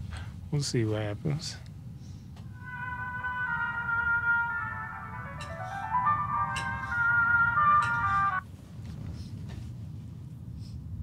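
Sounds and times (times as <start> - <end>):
slow melody of held notes: 2.5 - 8.4.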